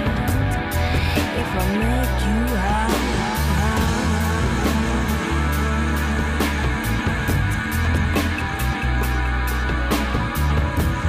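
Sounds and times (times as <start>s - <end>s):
bass line: 0.0s - 11.0s
drums keeping beat: 0.0s - 11.0s
electric guitar: 0.0s - 11.0s.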